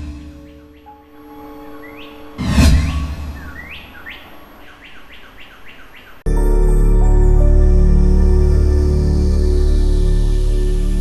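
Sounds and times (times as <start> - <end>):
held music chord: 0.0 - 4.6, 6.3 - 11.0
quick rising bird-like chirps: 0.3 - 6.2.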